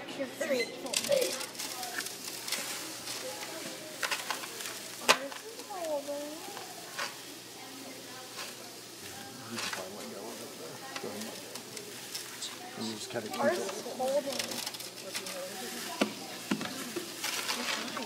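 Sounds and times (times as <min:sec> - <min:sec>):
sand streaming into bucket: 0:15.5 - 0:18.0.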